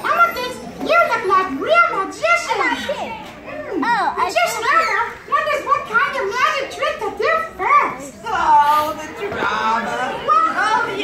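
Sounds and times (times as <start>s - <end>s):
children shouting: 0.0s - 8.2s, 9.2s - 11.0s.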